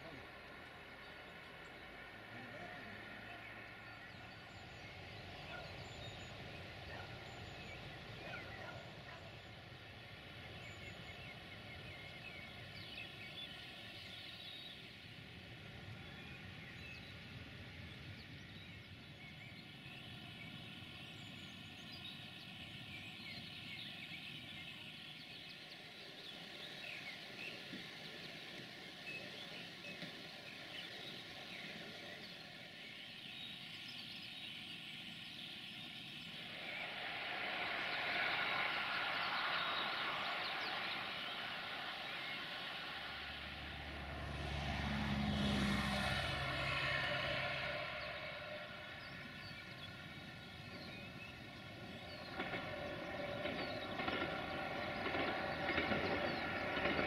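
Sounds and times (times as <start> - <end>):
distant engine rumble: 36.4 - 57.0.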